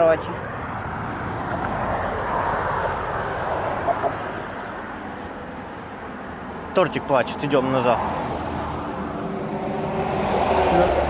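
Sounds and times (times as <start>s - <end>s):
passing vehicle rushing: 0.0s - 11.0s.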